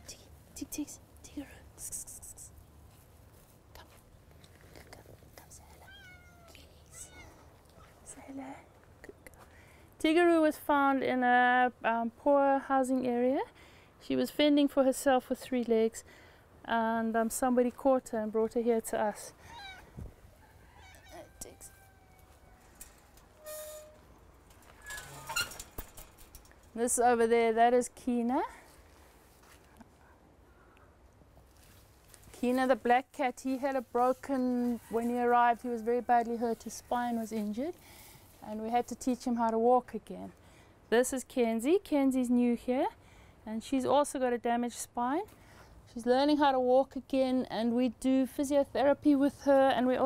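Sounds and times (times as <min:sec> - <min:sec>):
cat meowing faintly: 0:05.8 - 0:08.0, 0:19.5 - 0:19.9, 0:20.7 - 0:22.7.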